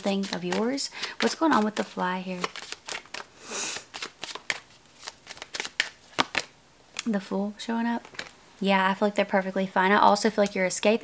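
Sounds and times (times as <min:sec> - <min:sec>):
cards being shuffled: 0:00.0 - 0:07.1, 0:08.0 - 0:08.4.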